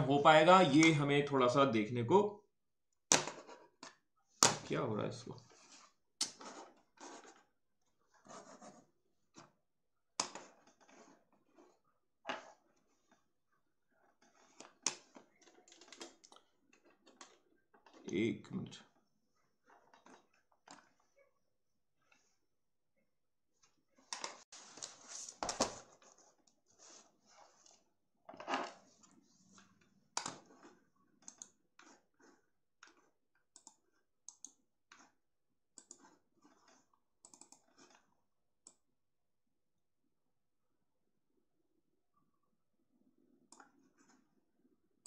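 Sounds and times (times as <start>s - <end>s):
computer mouse clicks: 30.2s - 35.1s, 35.8s - 38.0s.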